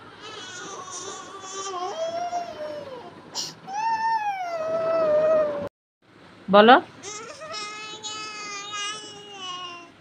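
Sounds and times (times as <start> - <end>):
toddler wailing cry: 0.2 - 3.1, 3.7 - 5.7.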